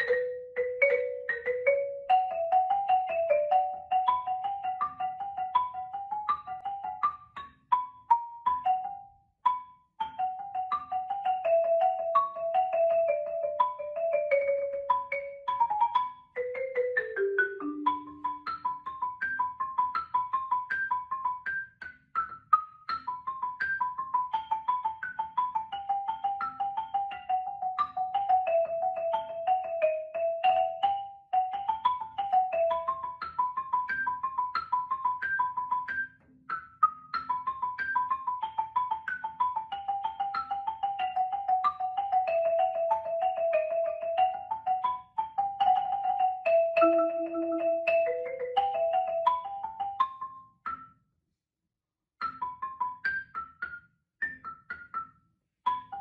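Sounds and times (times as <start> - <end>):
marimba played with mallets: 0.0 - 51.0, 52.2 - 56.0.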